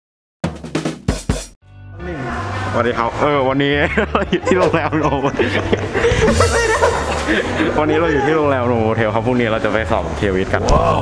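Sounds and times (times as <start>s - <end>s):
man chuckling: 4.0s - 8.3s
man talking: 7.4s - 11.0s.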